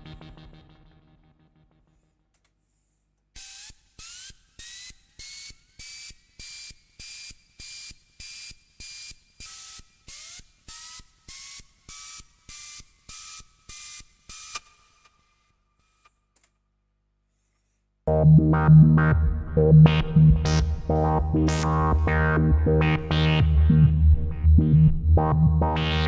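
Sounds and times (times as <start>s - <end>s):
synthesizer pulsing noise bursts: 18.1s - 26.0s.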